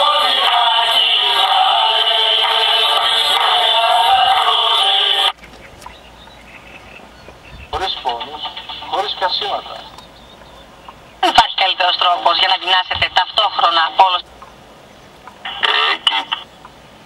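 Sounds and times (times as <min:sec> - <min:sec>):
man speaking: 0:07.7 - 0:09.9, 0:11.2 - 0:14.2, 0:15.5 - 0:16.4.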